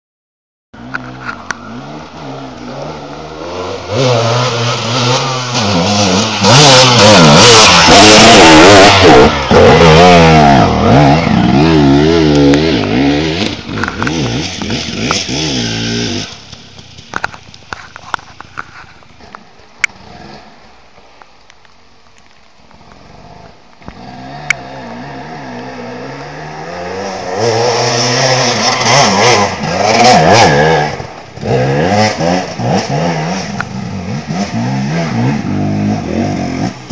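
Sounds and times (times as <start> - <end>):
motorcycle engine revving: 0.8 - 17.8, 23.0 - 36.9.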